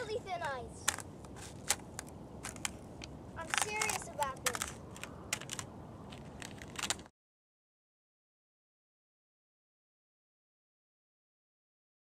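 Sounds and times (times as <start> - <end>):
thin ice crackling underfoot: 3.4 - 7.1.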